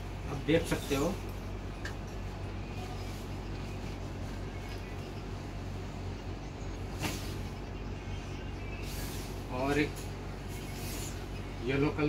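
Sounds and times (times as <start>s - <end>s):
steady low hum: 0.0s - 12.0s
cloth swishing: 6.9s - 7.5s.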